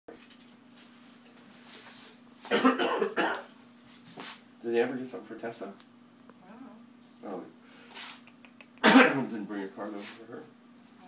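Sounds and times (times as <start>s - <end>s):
harsh coughing: 2.5s - 3.5s, 8.7s - 9.3s.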